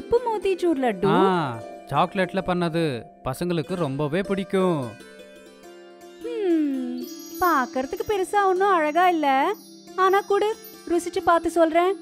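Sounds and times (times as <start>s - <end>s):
light children's music: 0.0s - 12.0s
cartoon character speaking: 1.0s - 1.4s
tinkling jingle: 3.6s - 12.0s.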